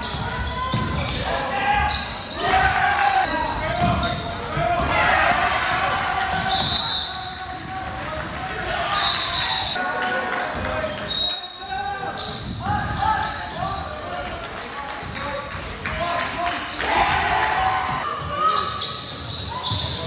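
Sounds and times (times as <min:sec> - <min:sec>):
sneaker squeaks: 0:00.0 - 0:08.0, 0:08.7 - 0:09.8, 0:10.4 - 0:17.2, 0:18.0 - 0:20.0
echoing voices in hall: 0:00.0 - 0:20.0.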